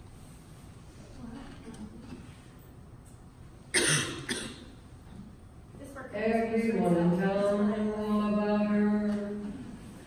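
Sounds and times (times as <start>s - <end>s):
person coughing: 3.7s - 4.7s.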